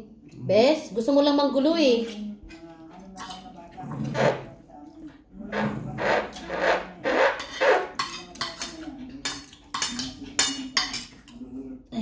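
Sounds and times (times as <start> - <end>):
cutlery scraping on a plate: 1.9 - 4.6, 5.5 - 11.4
cutlery clinking on a plate: 2.1 - 4.3, 6.2 - 11.4.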